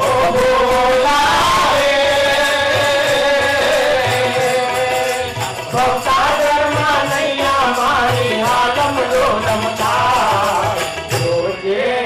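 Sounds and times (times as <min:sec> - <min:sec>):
tabla strokes: 0:00.0 - 0:11.7
man singing: 0:00.0 - 0:12.0
hand cymbals clinking: 0:02.4 - 0:12.0.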